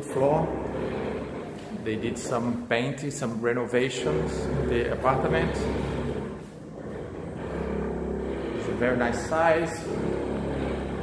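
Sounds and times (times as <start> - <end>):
low steady rumble: 3.8 - 11.0.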